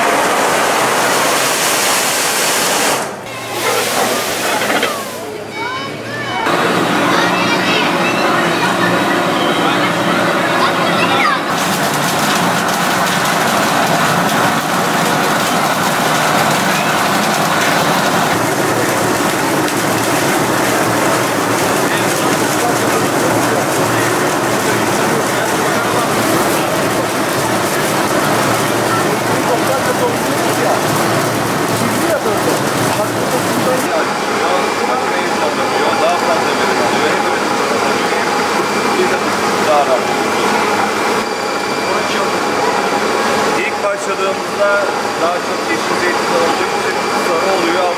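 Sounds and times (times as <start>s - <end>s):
mill machinery hiss and rumble: 0.0s - 5.5s, 6.4s - 47.9s
people talking: 3.3s - 47.9s.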